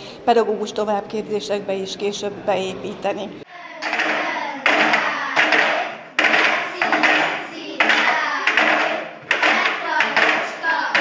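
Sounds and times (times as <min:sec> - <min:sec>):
children chanting in rhythm: 0:03.5 - 0:11.0
children clapping: 0:03.8 - 0:11.0.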